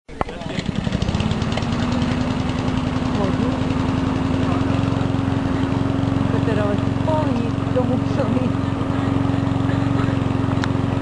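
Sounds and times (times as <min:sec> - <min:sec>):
small engine running: 0:00.2 - 0:11.0.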